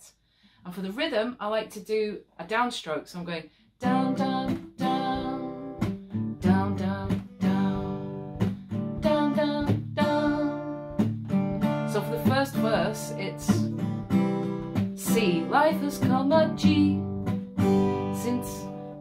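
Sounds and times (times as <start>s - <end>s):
acoustic guitar strummed: 3.8s - 19.0s.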